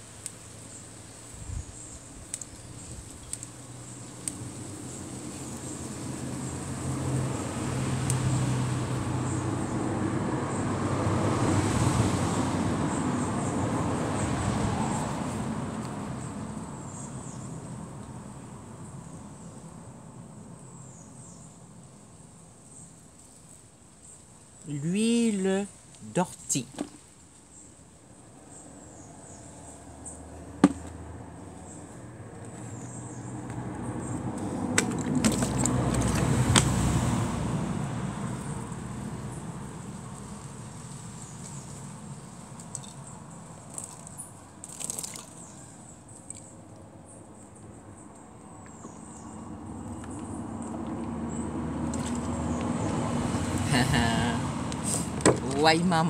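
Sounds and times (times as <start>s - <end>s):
road vehicle rumbling past: 3.6s - 22.0s, 28.2s - 44.6s, 46.8s - 56.0s.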